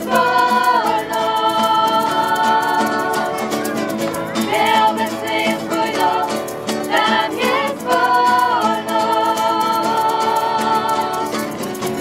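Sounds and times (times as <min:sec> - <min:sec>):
group singing worship song: 0:00.0 - 0:03.6, 0:04.5 - 0:12.0
strummed acoustic guitar: 0:00.0 - 0:12.0.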